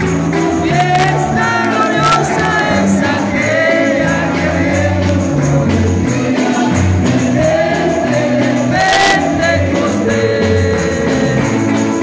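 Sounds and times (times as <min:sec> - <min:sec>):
bass line: 0:00.0 - 0:12.0
congregation singing a hymn: 0:00.0 - 0:12.0
hand clapping: 0:00.0 - 0:12.0
percussion beat: 0:00.0 - 0:12.0.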